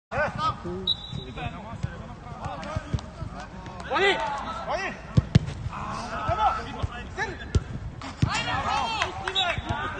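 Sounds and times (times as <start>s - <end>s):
players shouting: 2.4s - 7.5s, 8.2s - 9.9s
football being kicked: 5.1s - 8.5s.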